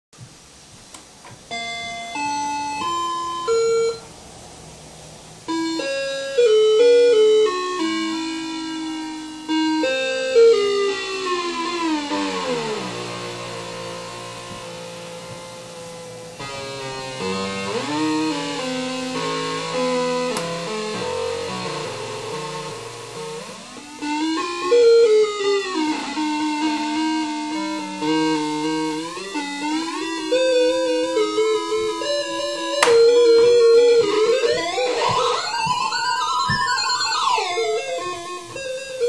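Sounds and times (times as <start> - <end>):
glitched electronic toy tones: 5.5 - 15.7, 16.4 - 39.0.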